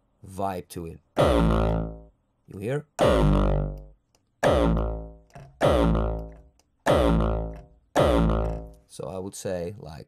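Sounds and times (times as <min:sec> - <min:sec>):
distorted kick drum hits: 0:01.2 - 0:02.0, 0:03.0 - 0:03.7, 0:04.4 - 0:06.2, 0:06.9 - 0:08.6.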